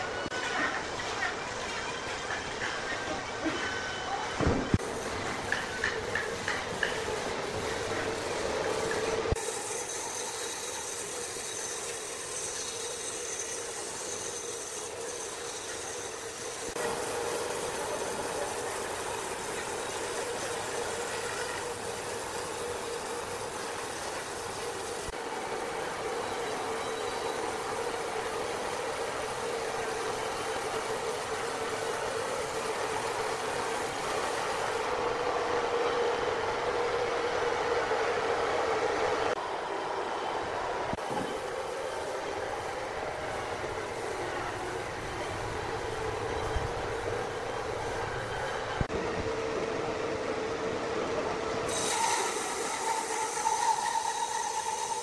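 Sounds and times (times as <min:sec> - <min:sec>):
band saw cutting log: 0:04.8 - 0:35.0, 0:51.7 - 0:55.0.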